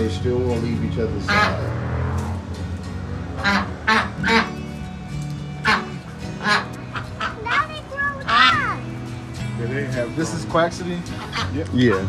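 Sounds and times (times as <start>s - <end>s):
ducks quacking: 1.1s - 2.2s, 3.2s - 4.9s, 5.5s - 9.0s, 10.0s - 12.0s.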